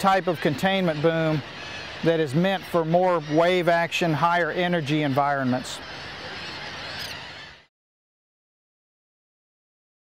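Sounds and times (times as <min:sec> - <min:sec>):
faint bird calling: 0:00.0 - 0:07.7.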